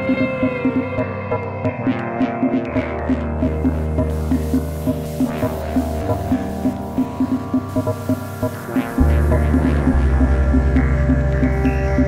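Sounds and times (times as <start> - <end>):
electronic music with pulsing beat: 0.0 - 12.0
deep bass line: 2.6 - 12.0.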